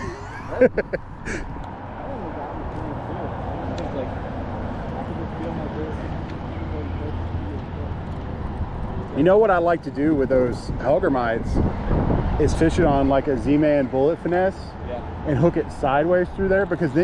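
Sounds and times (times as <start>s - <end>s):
man laughing: 0.0s - 1.6s
muffled talk: 1.9s - 4.2s.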